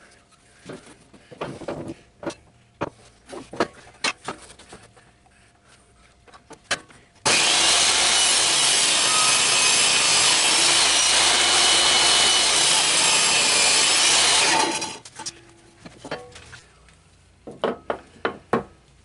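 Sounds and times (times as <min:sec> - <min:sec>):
table saw cutting wood: 0:07.3 - 0:15.0.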